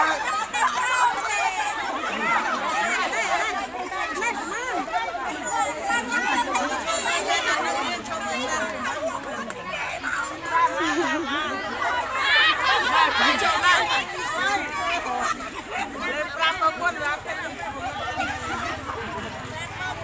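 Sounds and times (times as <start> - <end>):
adults chattering and calling out: 0.0 - 20.0.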